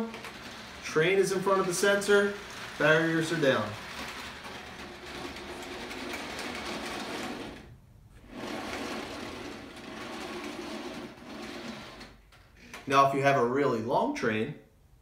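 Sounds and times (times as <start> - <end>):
toy train wheels rolling on track: 0.0 - 12.2.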